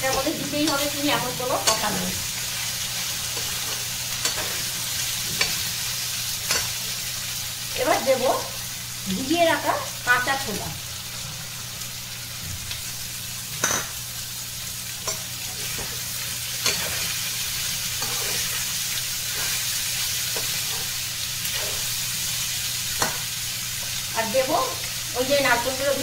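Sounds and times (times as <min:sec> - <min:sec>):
food sizzling in oil: 0:00.0 - 0:26.0.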